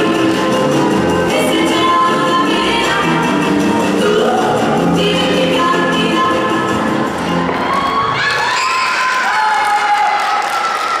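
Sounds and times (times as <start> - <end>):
spectators cheering and shouting: 7.2 - 11.0.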